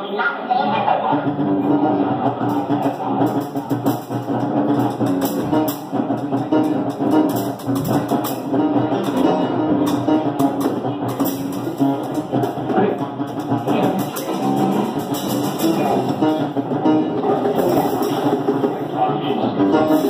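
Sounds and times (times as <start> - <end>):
guitar: 0.0 - 20.0
live band playing: 0.8 - 20.0.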